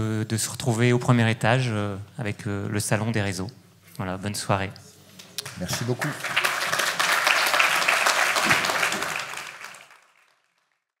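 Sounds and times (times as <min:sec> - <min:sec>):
audience applauding: 0:05.4 - 0:10.9.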